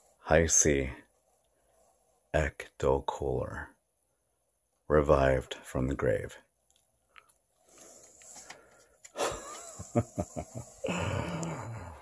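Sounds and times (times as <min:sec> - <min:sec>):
man laughing: 0:09.2 - 0:12.0.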